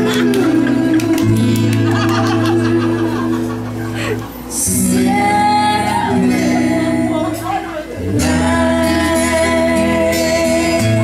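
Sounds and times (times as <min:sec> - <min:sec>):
woman singing: 0:00.0 - 0:03.7, 0:04.5 - 0:07.5, 0:08.1 - 0:11.0
acoustic guitar strumming chords: 0:00.0 - 0:11.0.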